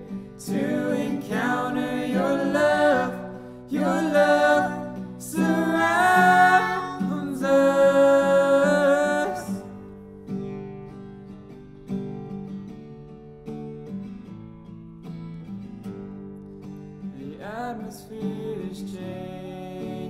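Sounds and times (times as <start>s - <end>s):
person singing: 0.0s - 9.8s
acoustic guitar chords: 0.0s - 20.0s.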